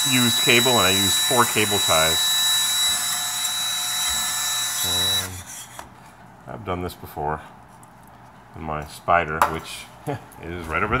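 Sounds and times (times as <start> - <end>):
cordless drill whining: 0.0 - 5.8.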